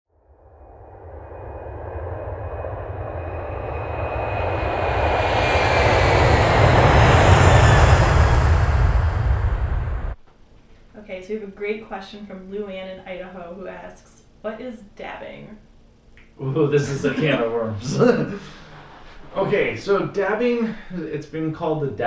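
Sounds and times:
faint high whine: 0.3s - 10.2s, 10.9s - 22.0s
rushing jet-like noise: 1.3s - 10.2s.

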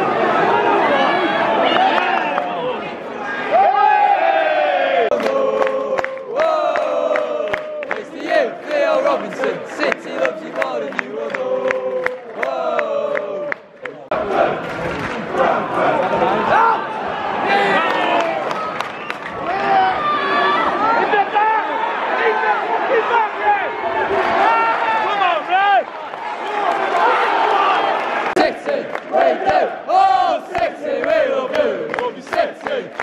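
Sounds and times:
crowd shouting and calling out: 0.0s - 33.0s
crowd clapping in time: 1.6s - 2.6s, 5.1s - 16.4s, 17.6s - 19.9s, 25.0s - 33.0s
crowd singing a chant: 4.6s - 16.8s, 28.2s - 33.0s.

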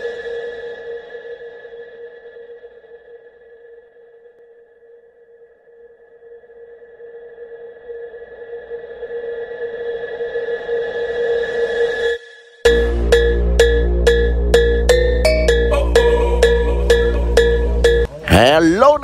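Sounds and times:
electronic ringing tone: 13.6s - 18.1s.

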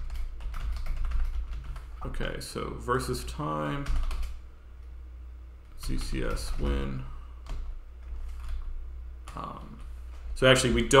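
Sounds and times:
computer keyboard typing: 0.0s - 2.0s, 3.8s - 4.4s, 5.8s - 9.9s
steady low hum: 0.0s - 11.0s.

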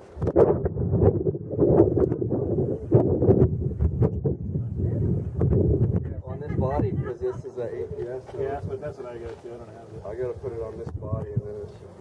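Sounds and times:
wind buffeting microphone: 0.0s - 12.0s
microphone knocks and pops: 0.2s - 6.2s.

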